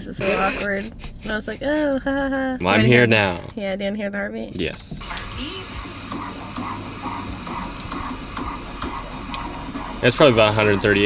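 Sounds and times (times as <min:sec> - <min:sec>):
fetal heartbeat through phone speaker: 0:04.9 - 0:11.0.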